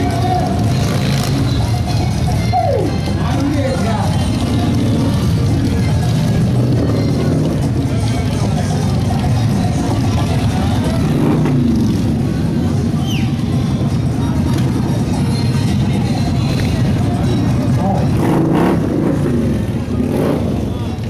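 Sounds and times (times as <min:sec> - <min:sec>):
crowd chatter: 0:00.0 - 0:21.0
motorcycle engines running: 0:00.0 - 0:21.0
music: 0:00.0 - 0:21.0.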